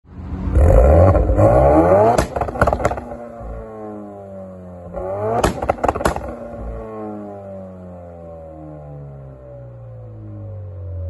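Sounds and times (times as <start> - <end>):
car engine revving hard: 0.5 - 3.6, 4.8 - 7.2
rev limiter cracks: 2.0 - 3.3, 5.0 - 6.7.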